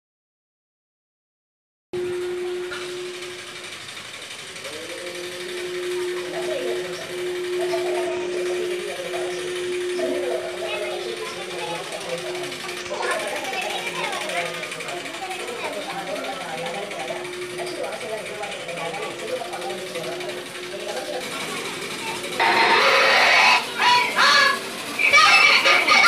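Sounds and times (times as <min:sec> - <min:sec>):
steady hum: 0:02.0 - 0:26.0
people's voices: 0:04.5 - 0:26.0.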